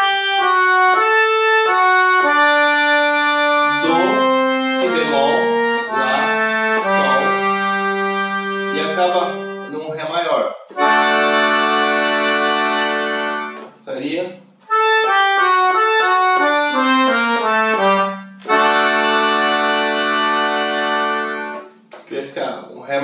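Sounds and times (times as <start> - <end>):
piano accordion playing: 0.0 - 21.9.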